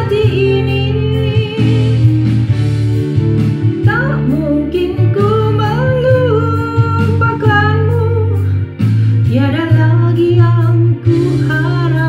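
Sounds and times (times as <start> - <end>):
woman singing into microphone: 0.0 - 2.4, 3.7 - 12.0
instrumental backing track: 0.0 - 12.0.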